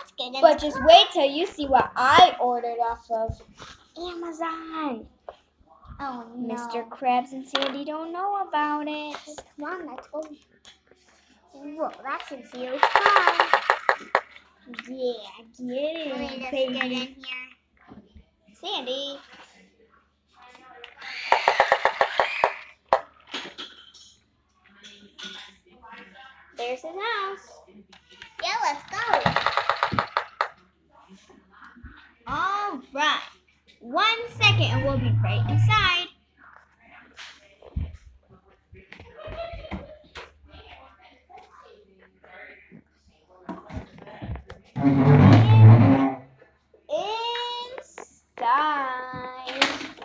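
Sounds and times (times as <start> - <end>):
plastic toys knocking and clicking: 7.5 - 7.8, 11.9 - 15.0, 21.0 - 24.2, 28.3 - 30.6, 49.1 - 50.0.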